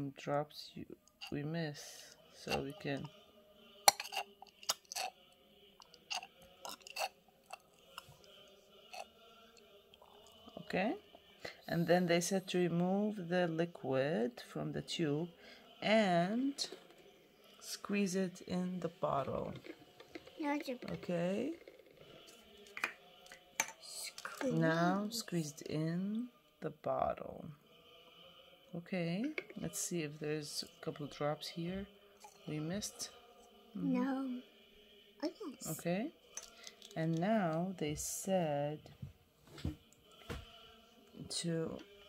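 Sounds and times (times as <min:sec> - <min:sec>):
plastic pieces clicking: 0:36.4 - 0:37.0.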